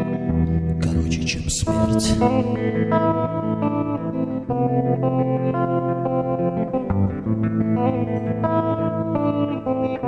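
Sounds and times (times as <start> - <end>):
guitar sustained chords: 0.0 - 10.0.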